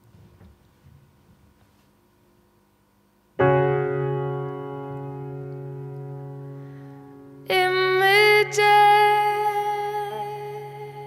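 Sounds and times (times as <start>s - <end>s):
grand piano chord: 3.4s - 11.0s.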